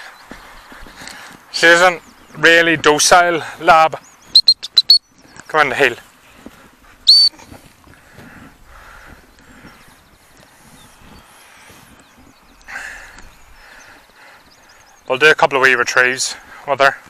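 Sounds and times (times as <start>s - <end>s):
faint birdsong: 0.0s - 17.0s
dog whistle short high blast: 7.1s - 7.4s.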